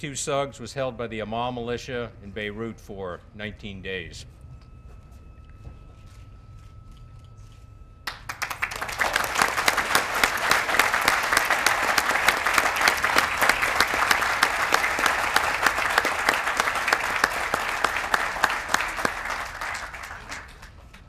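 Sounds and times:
audience applauding: 0:08.1 - 0:21.0.

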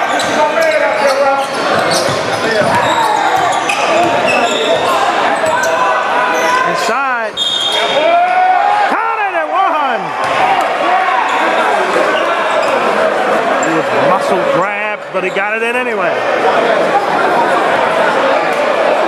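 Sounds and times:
sneakers squeaking: 0:00.0 - 0:06.7, 0:07.3 - 0:08.0, 0:11.2 - 0:14.0
echoing voices: 0:00.0 - 0:19.0.

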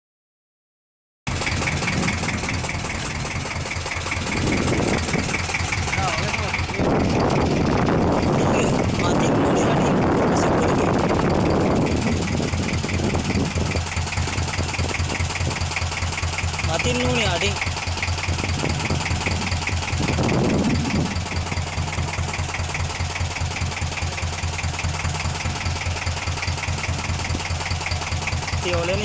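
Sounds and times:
boat engine running: 0:01.3 - 0:29.0.

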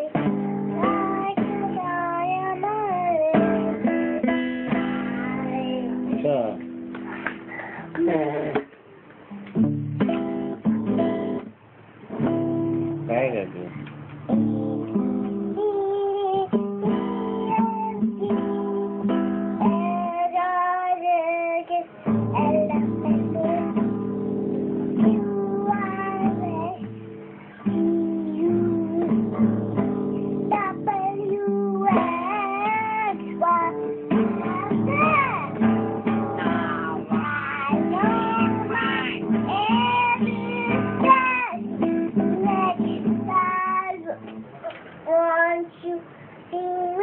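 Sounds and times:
girl singing without words: 0:00.0 - 0:06.2, 0:14.3 - 0:47.0
acoustic guitar strumming: 0:00.0 - 0:45.6.

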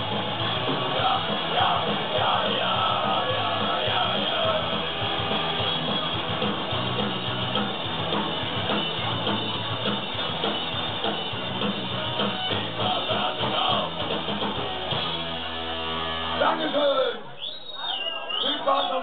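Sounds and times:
punk rock band playing: 0:00.0 - 0:17.1.

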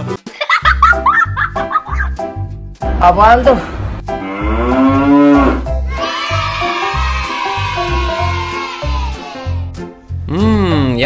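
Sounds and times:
background music with steady beat: 0:00.0 - 0:11.0
cow mooing: 0:04.2 - 0:05.7.

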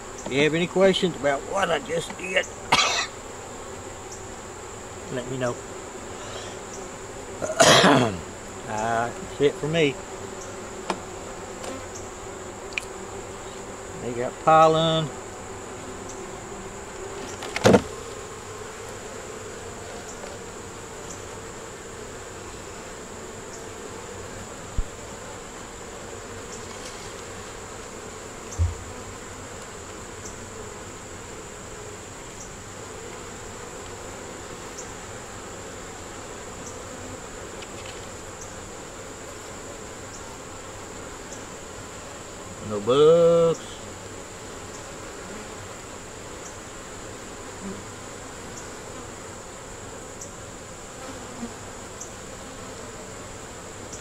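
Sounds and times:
honey bees buzzing: 0:00.0 - 0:54.0
dull knocks: 0:17.5 - 0:18.0, 0:28.6 - 0:29.0.

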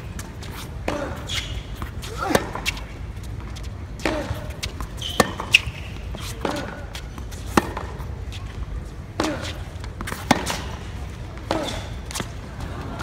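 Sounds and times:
racket hitting ball: 0:00.0 - 0:08.4, 0:09.2 - 0:12.4
arena noise: 0:00.0 - 0:13.0
shoe squeak: 0:00.3 - 0:02.9, 0:03.6 - 0:07.5, 0:11.6 - 0:12.3
ball bouncing: 0:03.4 - 0:08.0.

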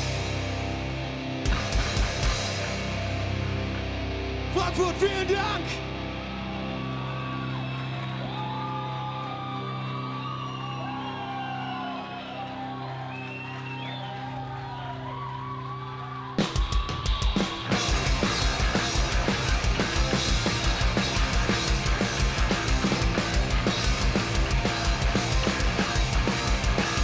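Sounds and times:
full rock band playing: 0:00.0 - 0:07.6, 0:16.4 - 0:27.0
electric guitars droning chord: 0:00.0 - 0:08.3, 0:17.6 - 0:27.0
person shouting: 0:04.6 - 0:05.8.

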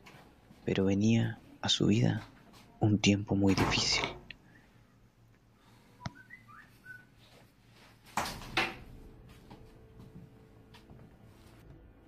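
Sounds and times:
whistled chirps: 0:06.0 - 0:07.2.

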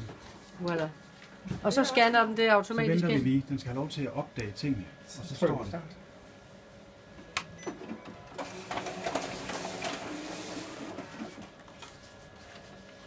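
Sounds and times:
copier click: 0:07.4 - 0:11.4
copier feeding and scanning: 0:07.5 - 0:13.0.

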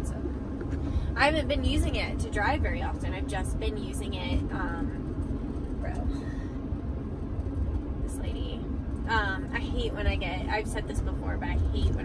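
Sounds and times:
road and engine rumble: 0:00.0 - 0:12.0
woman's voice: 0:01.1 - 0:05.0, 0:05.8 - 0:06.2, 0:08.1 - 0:12.0.

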